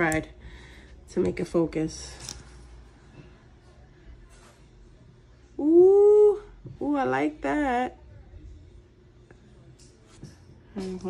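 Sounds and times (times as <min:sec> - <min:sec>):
person saying ooh: 0:05.6 - 0:06.5.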